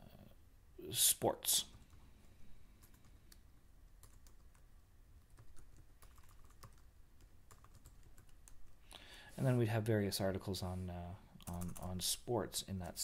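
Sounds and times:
computer keyboard typing: 2.8s - 3.4s, 4.0s - 4.6s, 5.2s - 8.8s, 11.4s - 12.0s.

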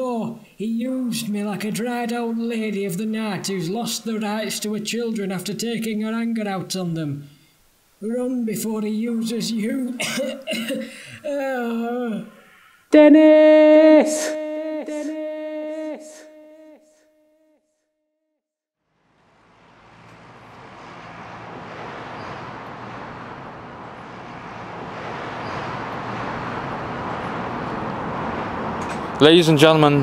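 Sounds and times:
person shouting with echo: 13.0s - 17.0s
distant traffic: 18.8s - 30.0s.

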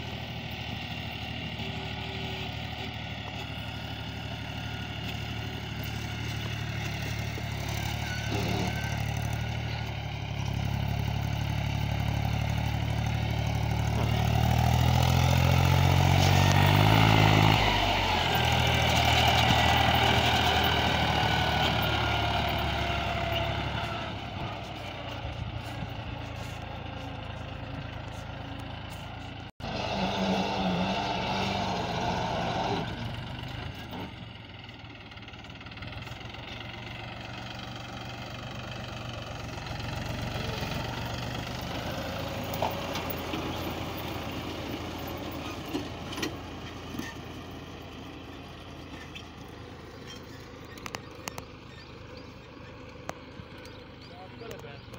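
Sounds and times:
tractor diesel engine under load: 0.0s - 54.9s.

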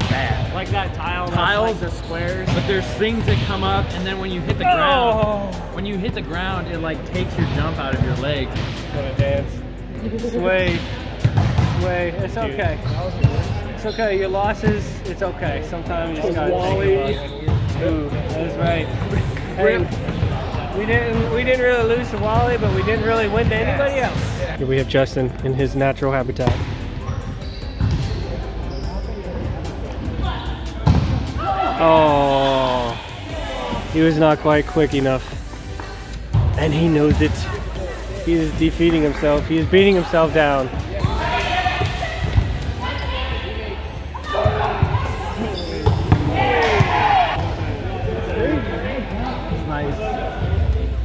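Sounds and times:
players calling and shouting: 0.0s - 24.6s, 26.2s - 51.0s
music: 0.0s - 51.0s.

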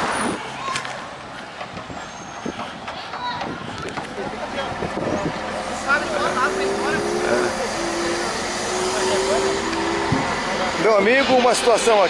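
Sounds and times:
loader engine running: 3.9s - 12.0s
steady whine: 5.6s - 11.3s.

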